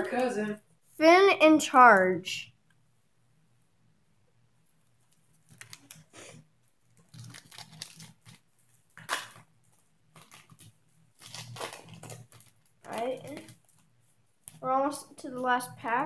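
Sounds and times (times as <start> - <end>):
cards being handled: 5.0 - 14.6
plastic wrapper crinkling and tearing: 5.0 - 15.0.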